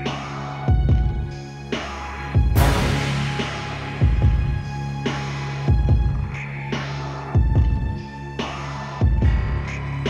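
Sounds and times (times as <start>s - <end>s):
slow deep beat: 2.4s - 6.4s
low drone: 2.6s - 5.7s.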